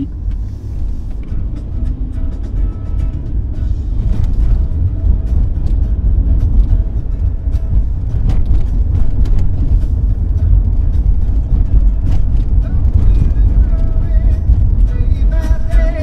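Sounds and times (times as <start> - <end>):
car road and engine rumble: 0.0 - 16.0
music playing: 0.0 - 16.0.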